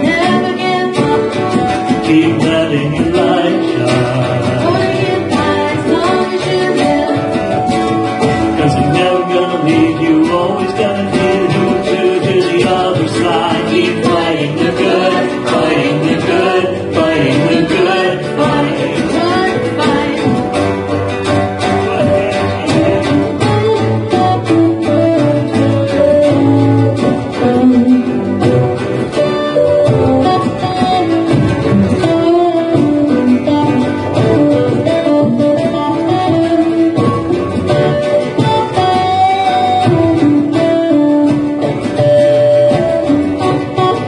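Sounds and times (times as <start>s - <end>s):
drum kit beat: 0.0s - 44.0s
strummed ukuleles: 0.0s - 44.0s.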